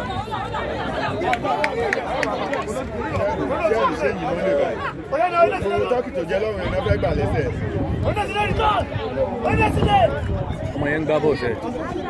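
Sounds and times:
overlapping voices chattering: 0.0 - 12.0.

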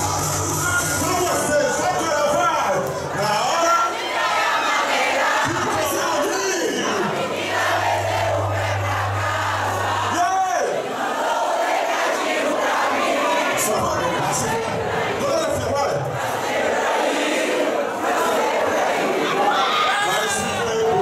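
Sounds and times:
dance crowd shouting together: 0.0 - 21.0
deep bass hum: 7.5 - 10.4.

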